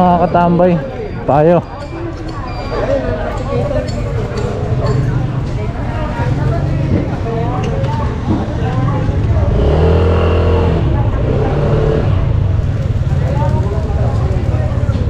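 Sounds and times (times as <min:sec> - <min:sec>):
motorcycle engine running: 0:08.7 - 0:15.0.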